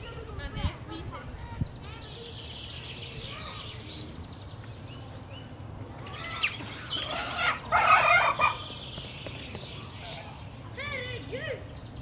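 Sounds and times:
fowl calling: 0:06.1 - 0:08.8.

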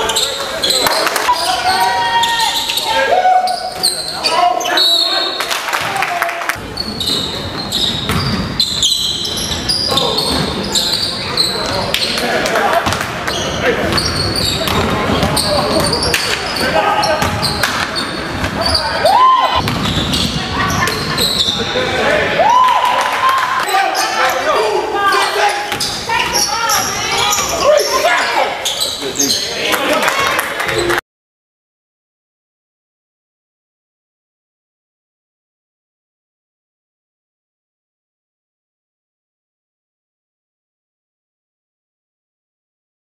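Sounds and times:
voices echoing in hall: 0:00.0 - 0:31.0
ball bouncing on court floor: 0:08.0 - 0:08.5, 0:12.8 - 0:16.4, 0:17.2 - 0:18.8, 0:19.6 - 0:21.1.

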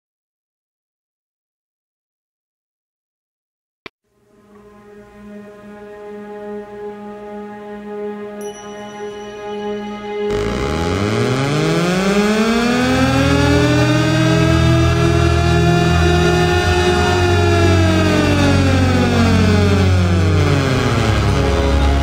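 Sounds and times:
electronic tone rising and falling: 0:10.2 - 0:22.0
low bass notes: 0:10.3 - 0:22.0.

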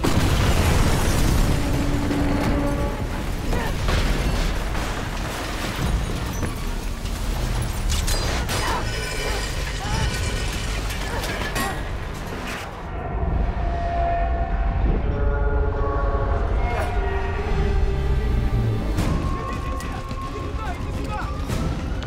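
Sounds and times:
action film music: 0:10.7 - 0:22.0.

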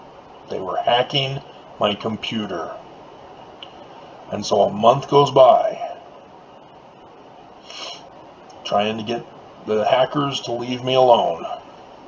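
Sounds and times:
room and microphone hiss: 0:00.0 - 0:12.0
soft rush of noise: 0:00.0 - 0:12.0.

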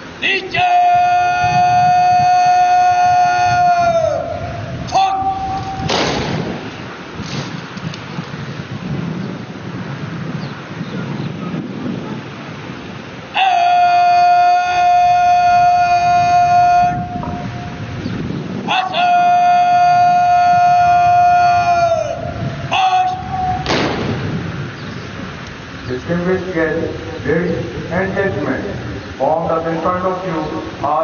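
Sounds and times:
long loud held calls: 0:00.0 - 0:05.9, 0:13.2 - 0:23.7
parade-ground noise: 0:00.0 - 0:31.0.

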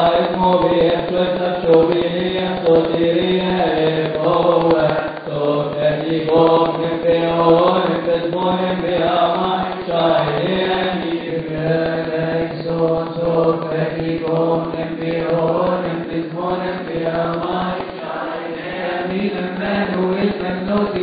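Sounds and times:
hymn chanted with melismatic notes: 0:00.0 - 0:21.0.

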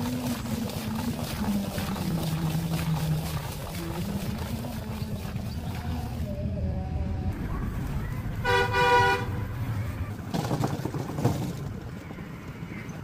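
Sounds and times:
vehicle horn toot: 0:08.4 - 0:09.4.

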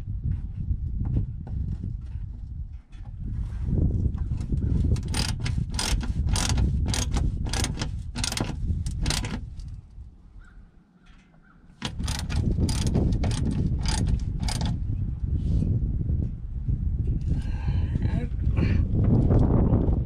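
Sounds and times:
socket ratchet clicking: 0:04.9 - 0:09.7, 0:11.8 - 0:14.8
low rumble: 0:11.9 - 0:20.0.

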